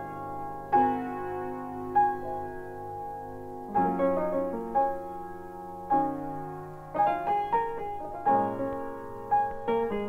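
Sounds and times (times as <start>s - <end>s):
jazz piano chords: 0.0s - 10.0s.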